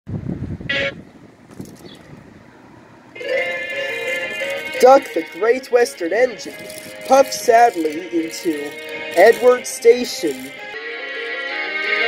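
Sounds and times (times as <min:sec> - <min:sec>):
music: 0:03.2 - 0:12.0.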